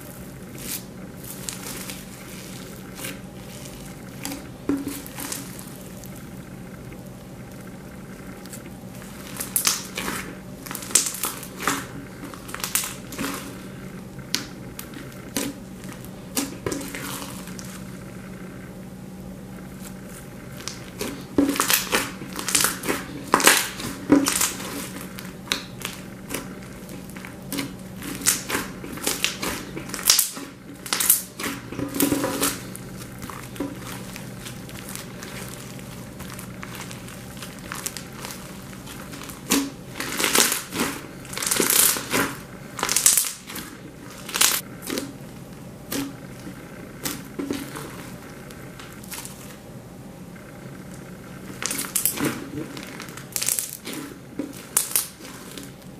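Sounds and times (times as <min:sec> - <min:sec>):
slime crackling and popping: 0:00.0 - 0:18.6, 0:19.6 - 0:49.6, 0:50.4 - 0:55.9.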